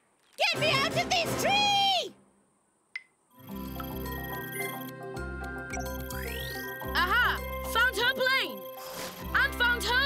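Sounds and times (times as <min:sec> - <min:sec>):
cartoon background music: 0:00.4 - 0:01.9, 0:03.4 - 0:10.0.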